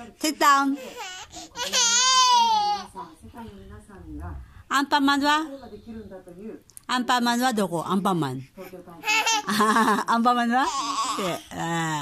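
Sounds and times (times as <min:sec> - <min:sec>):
baby crying: 0:00.7 - 0:03.0, 0:10.6 - 0:11.6
baby whimpering: 0:00.7 - 0:03.0, 0:10.6 - 0:11.6.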